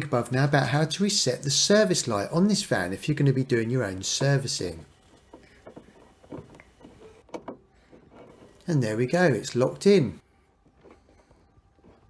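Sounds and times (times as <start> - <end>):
plastic clicks and scrapes: 4.2 - 8.7, 10.6 - 12.0.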